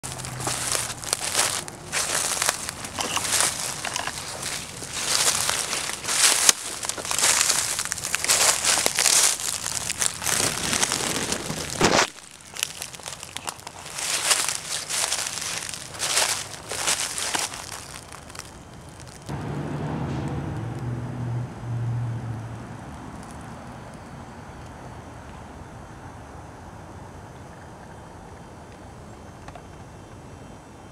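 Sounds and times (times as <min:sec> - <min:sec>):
low engine hum: 0:00.0 - 0:08.8, 0:19.2 - 0:26.1
twigs crackling and snapping: 0:00.0 - 0:19.3, 0:23.1 - 0:24.0.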